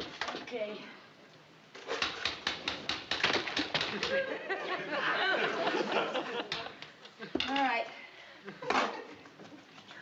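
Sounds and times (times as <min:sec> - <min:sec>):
wooden stick clacking on metal bucket: 0:01.8 - 0:04.2.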